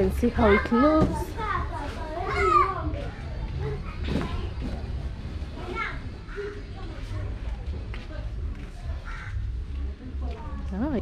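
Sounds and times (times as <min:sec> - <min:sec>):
children playing and calling: 0:00.2 - 0:10.8.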